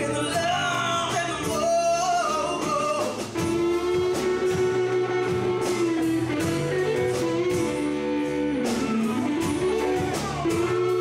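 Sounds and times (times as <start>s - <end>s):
woman singing: 0.0s - 5.4s
live band playing soul ballad: 0.0s - 11.0s.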